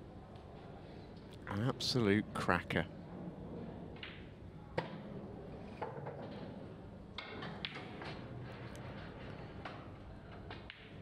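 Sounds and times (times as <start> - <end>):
low hum of hall: 0.0 - 11.0.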